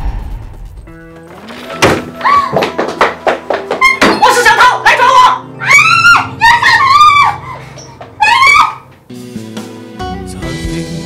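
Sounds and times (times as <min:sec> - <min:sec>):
background music: 0:00.0 - 0:11.0
high-pitched vocal cries: 0:03.8 - 0:08.9.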